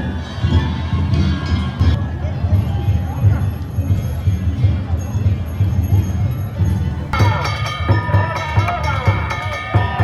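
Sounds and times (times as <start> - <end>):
taiko drum beat: 6.6 - 10.0
small hand gongs ringing: 7.2 - 10.0.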